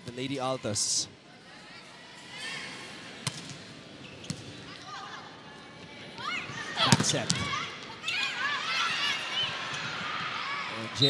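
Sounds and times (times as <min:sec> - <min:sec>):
arena crowd murmur: 0:00.0 - 0:11.0
ball bouncing on court floor: 0:04.2 - 0:04.5, 0:06.8 - 0:07.6.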